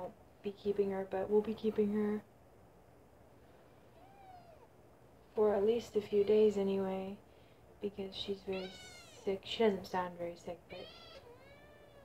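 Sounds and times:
kitten meowing: 4.0s - 4.7s, 8.6s - 9.3s, 10.8s - 12.0s.

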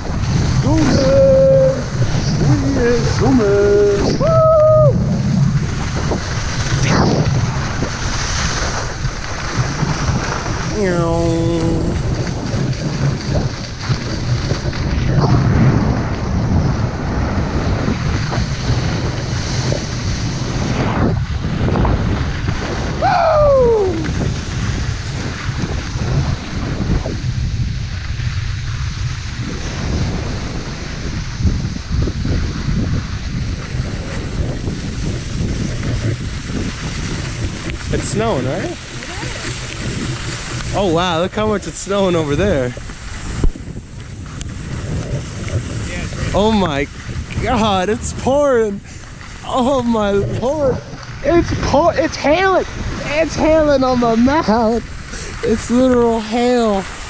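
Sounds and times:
skis hissing over wet snow: 0.0s - 57.0s
wind rushing over microphone: 0.0s - 57.0s
person shouting: 0.7s - 1.9s, 4.2s - 5.0s, 23.0s - 24.1s.

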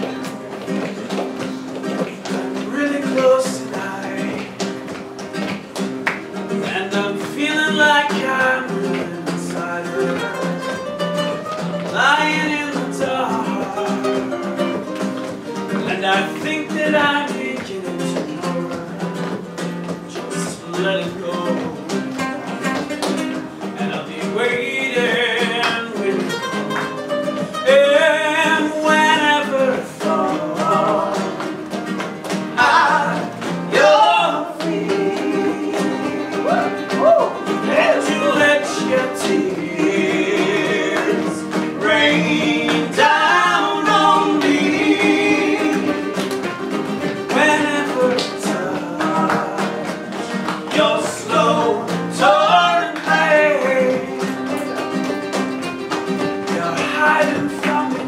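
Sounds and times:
man singing: 0.0s - 4.9s, 6.5s - 31.8s, 32.6s - 54.9s, 56.3s - 58.0s
acoustic guitars: 0.0s - 58.0s
hand claps: 0.0s - 58.0s.

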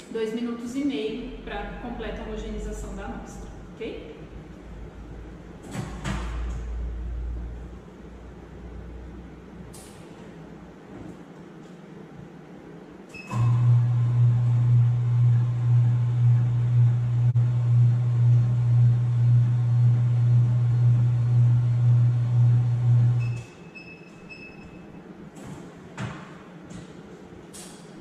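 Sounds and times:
homogeniser pulsing hum: 0.0s - 28.0s.

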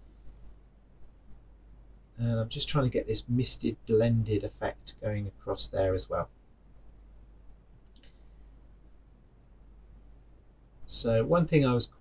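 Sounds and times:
faint click: 7.8s - 8.3s.

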